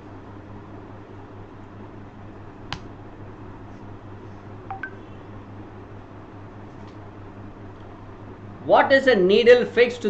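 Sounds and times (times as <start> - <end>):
low electrical hum: 0.0 - 10.0
electronic beeps: 4.7 - 5.1.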